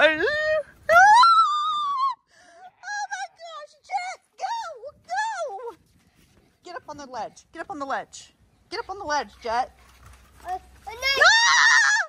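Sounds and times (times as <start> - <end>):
woman squealing in fright: 11.2 - 12.0.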